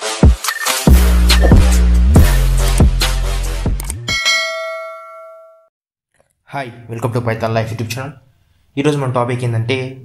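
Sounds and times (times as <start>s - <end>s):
notification bell ding: 4.1s - 5.6s.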